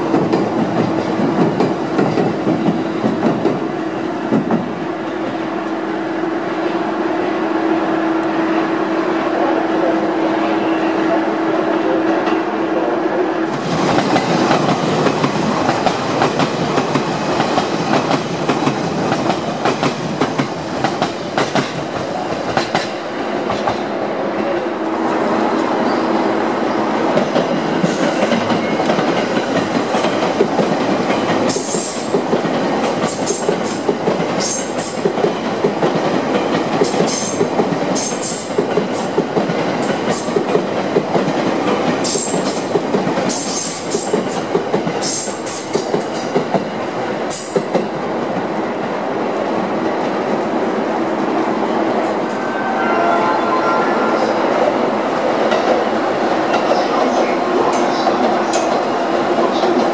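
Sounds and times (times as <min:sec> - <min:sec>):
train wheels rolling on rails: 0:00.0 - 0:09.1, 0:13.3 - 0:59.9.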